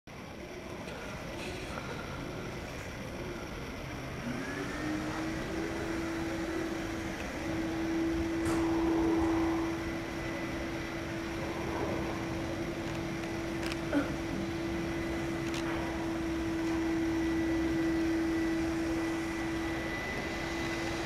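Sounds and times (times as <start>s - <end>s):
steady machine hum: 0.1s - 21.0s.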